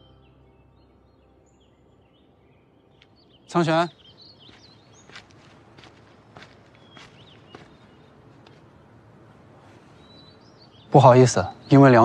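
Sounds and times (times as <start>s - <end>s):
soft footsteps walking: 4.0s - 10.0s.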